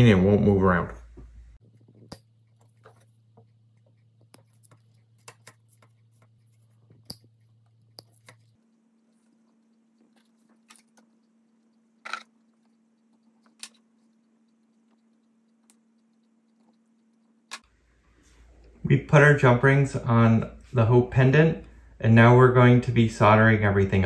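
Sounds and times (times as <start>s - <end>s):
low steady hum: 0.0s - 24.0s.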